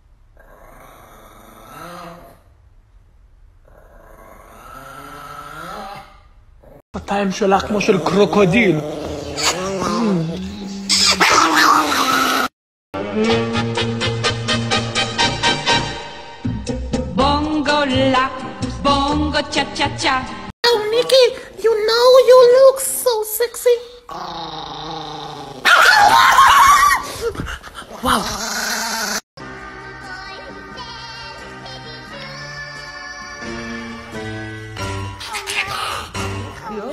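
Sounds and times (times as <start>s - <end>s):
dog growling: 0.4s - 2.5s, 3.6s - 6.8s, 7.6s - 12.5s, 24.1s - 25.9s, 27.1s - 29.2s, 35.2s - 36.9s
dog snarling and barking: 7.8s - 10.2s, 10.9s - 12.5s, 24.1s - 29.2s, 35.2s - 36.8s
background music: 13.0s - 20.5s, 29.4s - 36.9s.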